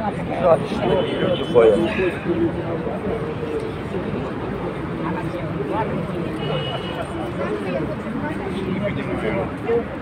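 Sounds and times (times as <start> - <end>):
faint voices of people: 0.0 - 10.0
outdoor background noise: 0.0 - 10.0.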